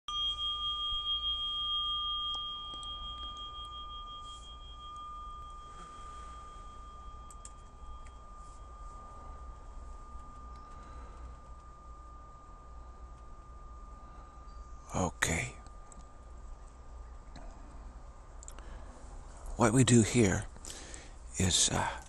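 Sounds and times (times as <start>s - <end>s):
bell ringing: 0.1s - 16.6s.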